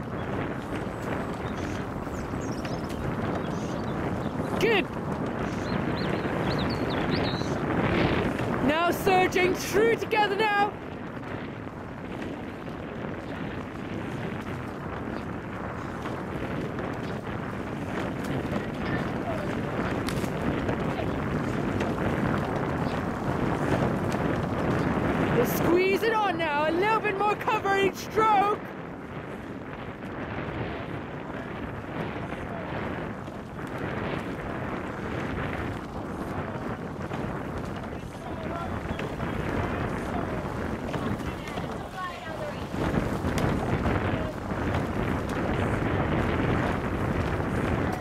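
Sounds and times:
wind buffeting microphone: 0.0 - 48.0.

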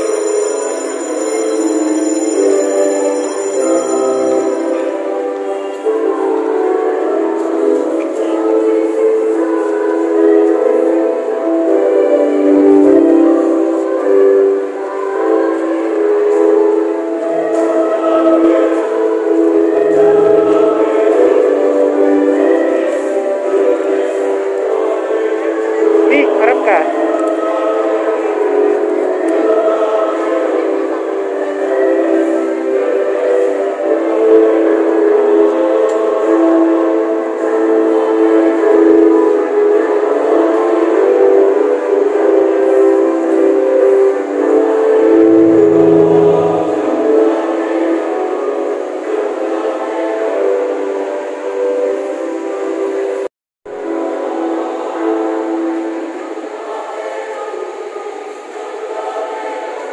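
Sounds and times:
church choir singing a hymn: 0.0 - 59.9.

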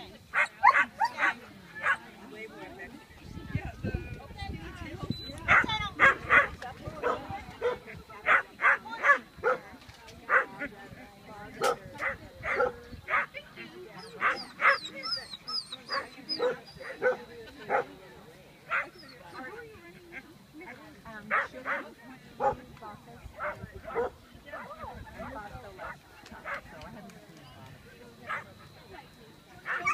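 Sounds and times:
dog barking: 0.4 - 2.0, 5.5 - 9.6, 11.6 - 13.3, 14.2 - 14.9, 15.9 - 17.9, 22.4 - 22.6, 29.7 - 29.9.

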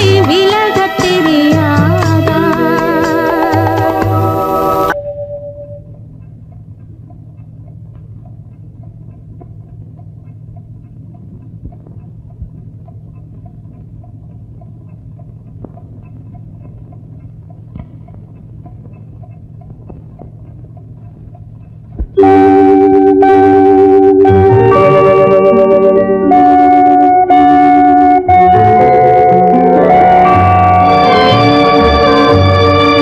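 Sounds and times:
loud music: 0.0 - 5.0, 22.2 - 33.0
low steady hum: 0.0 - 33.0
faint clicks and crackle: 6.0 - 22.2.

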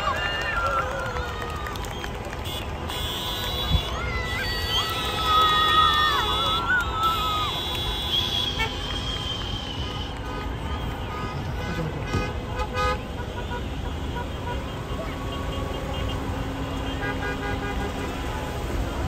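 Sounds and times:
crowd voices: 0.0 - 19.0
idling cars rumbling: 0.0 - 19.0
car horns beeping: 2.4 - 4.2, 6.2 - 18.5.

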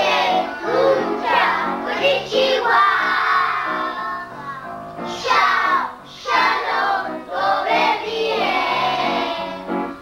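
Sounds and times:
children singing: 0.0 - 10.0.

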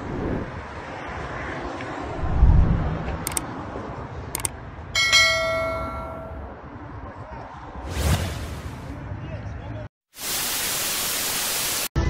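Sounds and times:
computer mouse clicks: 3.2 - 3.4
bell notification chime: 5.0 - 6.5.

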